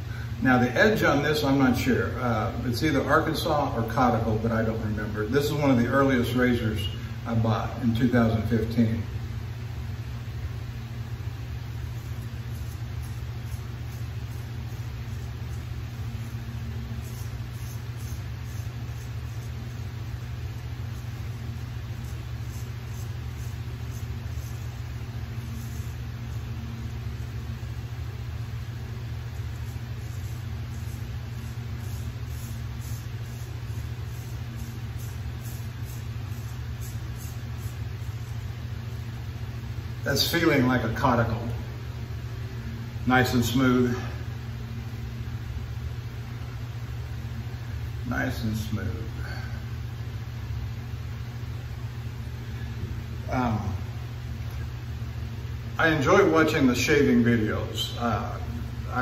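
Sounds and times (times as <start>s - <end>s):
low hum: 2.0s - 56.0s
razor scraping stubble: 11.7s - 39.2s.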